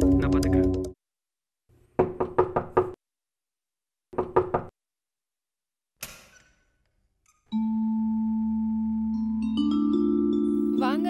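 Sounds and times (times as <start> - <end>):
knocking on wooden door: 2.0 - 3.0, 4.1 - 4.7.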